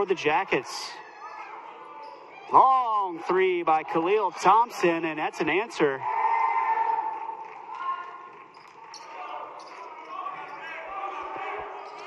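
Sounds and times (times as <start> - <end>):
crowd and players' voices: 0.0 - 12.0.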